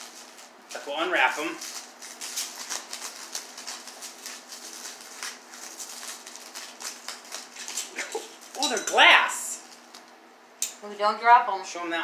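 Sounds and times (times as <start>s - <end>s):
packing wrap crinkling: 0.0s - 10.2s.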